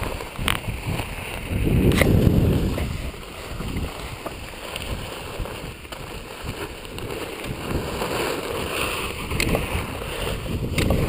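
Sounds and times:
skis scraping over snow: 0.0 - 11.0
wind buffeting microphone: 0.0 - 11.0.

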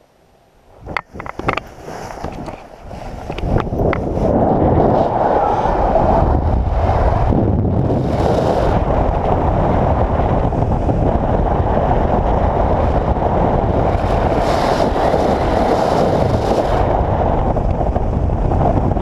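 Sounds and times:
wind rushing over microphone: 0.7 - 19.0.

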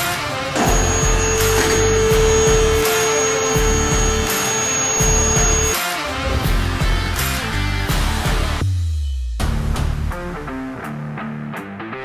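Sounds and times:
background music with beat: 0.0 - 12.0
car lift motor whining: 0.6 - 6.4.

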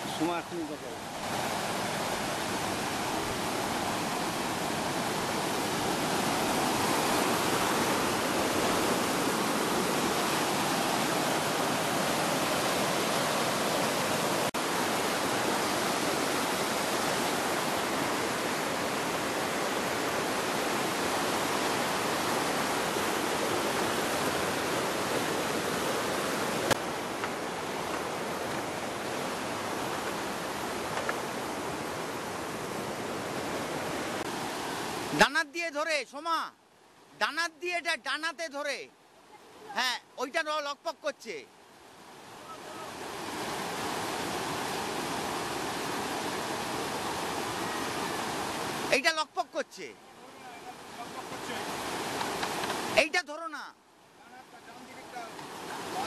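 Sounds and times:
river rushing over rocks: 0.0 - 36.0, 39.2 - 56.0.

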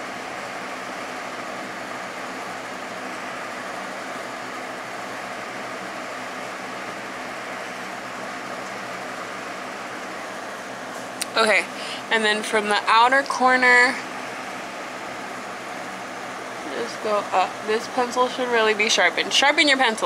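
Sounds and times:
electric fan running: 0.0 - 20.0.

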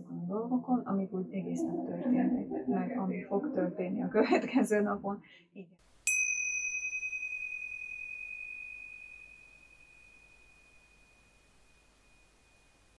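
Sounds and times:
bell-like chime ringing: 6.1 - 13.0.

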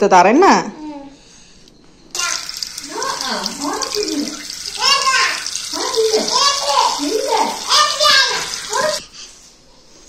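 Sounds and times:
tap water running into washbasin: 2.1 - 9.0.

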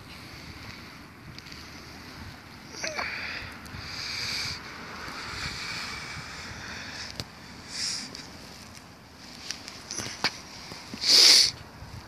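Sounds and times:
river water among ice: 0.0 - 12.0
wind: 0.0 - 12.0.

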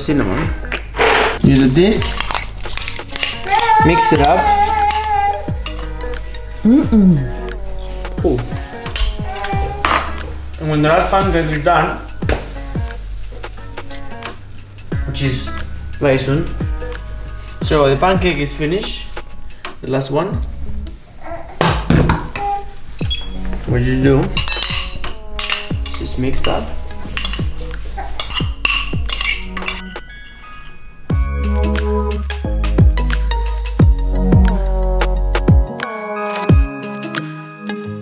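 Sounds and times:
background music: 0.0 - 38.0
metal spoon clinking on bowl: 2.0 - 6.1, 8.9 - 10.2, 24.4 - 30.8
electronic music with deep bass: 31.1 - 35.9.

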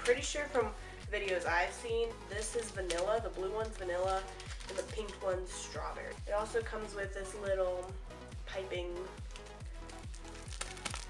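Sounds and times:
plastic piping bag crinkling: 0.0 - 6.6, 9.0 - 11.0
background music with drum beat: 8.0 - 11.0.

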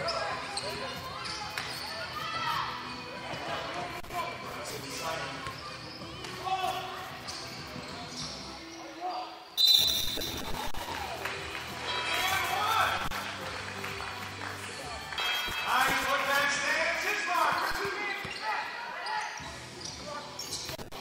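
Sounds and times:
echoing shouts and chatter: 0.0 - 9.5, 10.3 - 20.4.

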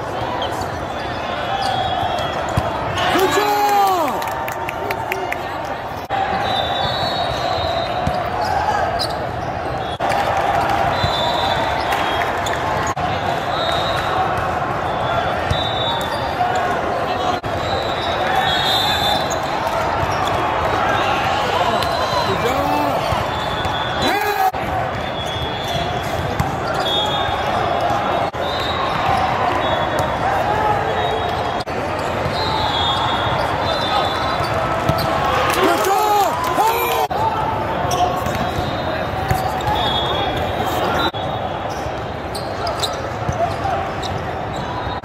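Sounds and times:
murmur of many voices: 0.0 - 45.0.

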